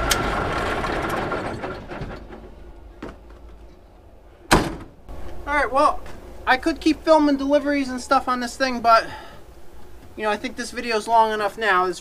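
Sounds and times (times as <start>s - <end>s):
truck door slamming: 4.5s - 5.1s.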